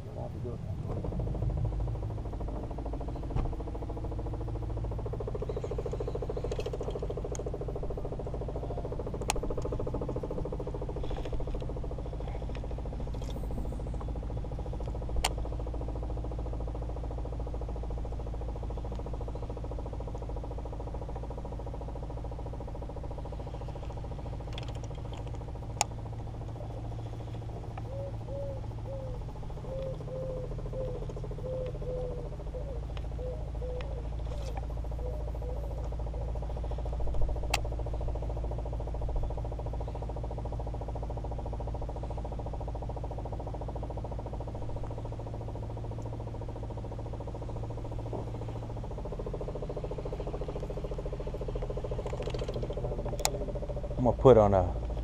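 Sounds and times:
boat motor humming: 0.0 - 55.0
sharp clicks: 0.9 - 11.8, 23.7 - 26.6, 35.8 - 38.2, 47.3 - 53.9.

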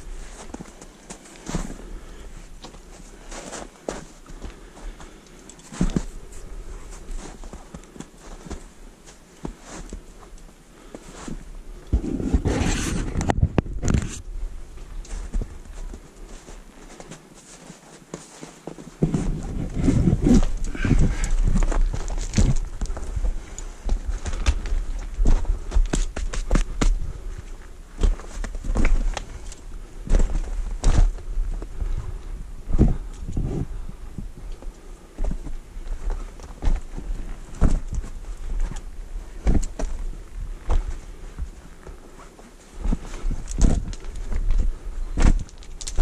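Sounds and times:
footsteps on loose rock: 0.2 - 14.3, 15.0 - 46.0.

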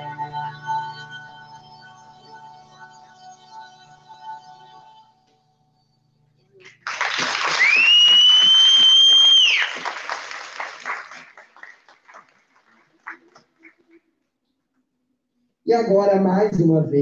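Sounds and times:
audience clapping and cheering: 6.6 - 14.1
loud rising whistle: 7.6 - 9.8.

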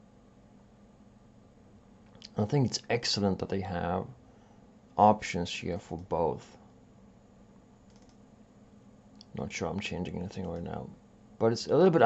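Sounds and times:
faint room hum: 0.0 - 12.0
computer mouse clicks: 7.8 - 8.2, 9.1 - 10.8.

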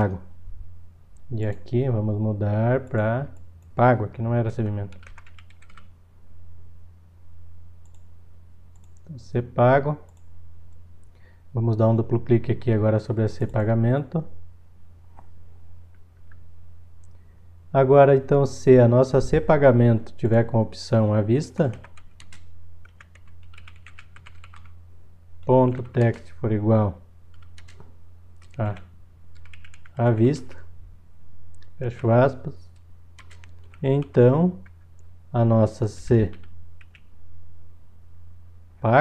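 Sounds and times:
steady low hum: 0.0 - 39.0
keyboard typing: 4.9 - 5.9, 21.7 - 24.7, 25.7 - 26.3, 27.3 - 30.0, 33.2 - 35.1, 36.3 - 37.1.

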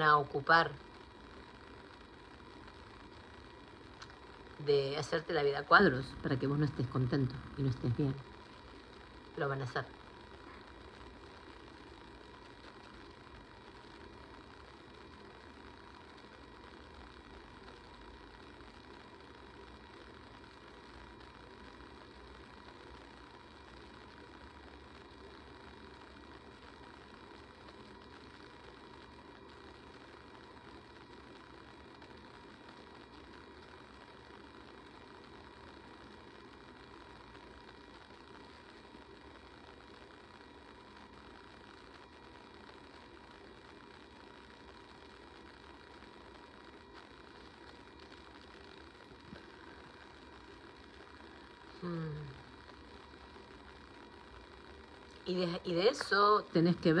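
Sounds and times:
even hiss: 0.0 - 57.0
thin constant hum: 0.0 - 57.0.

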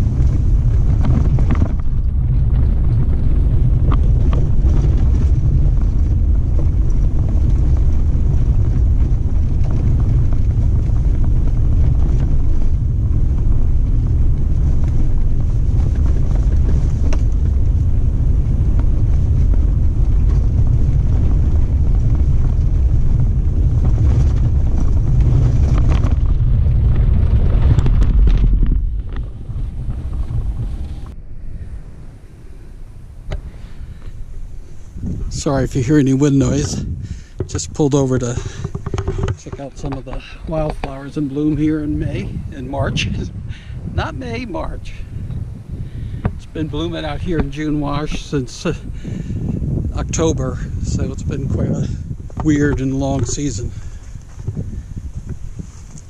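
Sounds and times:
knocks from rough ground: 0.0 - 31.2, 33.3 - 34.3, 35.0 - 56.0
vehicle rumbling on dirt track: 0.0 - 56.0.

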